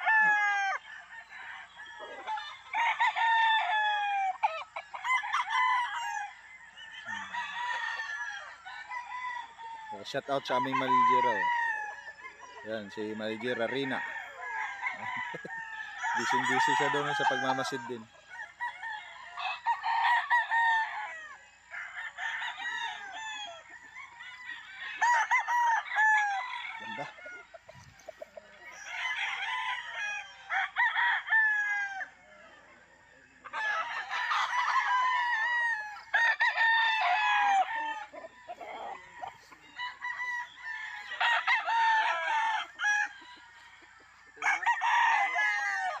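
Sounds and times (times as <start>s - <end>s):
roosters crowing: 0.0s - 46.0s.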